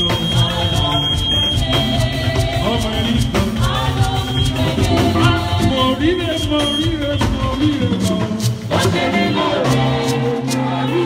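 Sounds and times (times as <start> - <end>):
church praise band music: 0.0 - 11.0
steady high-pitched tone: 4.3 - 6.2.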